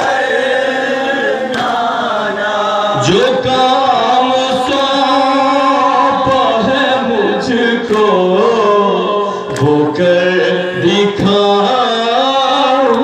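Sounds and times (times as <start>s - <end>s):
men chanting a lament: 0.0s - 13.0s
chest-beating slaps: 1.5s - 1.9s.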